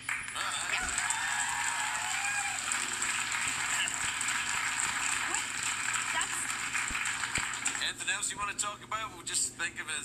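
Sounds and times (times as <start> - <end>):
muffled talk show voices: 0.3 - 10.0.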